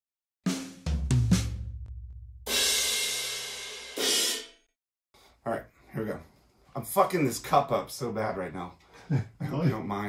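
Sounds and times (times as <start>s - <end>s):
deep drum hits: 0.5s - 2.7s
cymbal crash: 2.5s - 4.6s.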